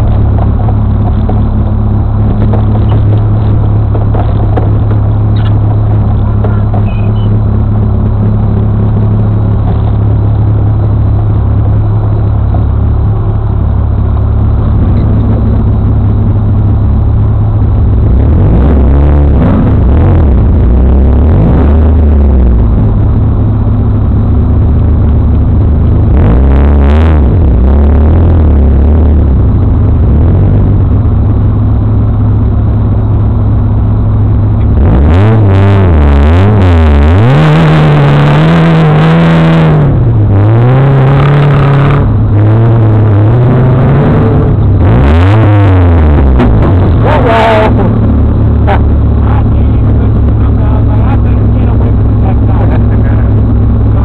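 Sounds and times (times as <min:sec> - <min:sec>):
off-road buggy engines revving: 0:00.0 - 0:54.0.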